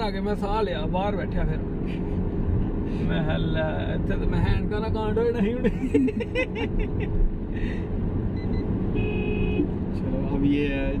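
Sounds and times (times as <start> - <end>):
road and engine rumble in car: 0.0 - 11.0
men laughing: 5.5 - 7.2.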